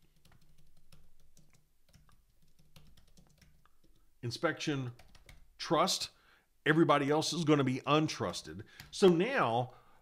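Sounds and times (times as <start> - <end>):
computer keyboard keystrokes: 0.0 - 4.0, 5.0 - 5.4, 8.3 - 9.2.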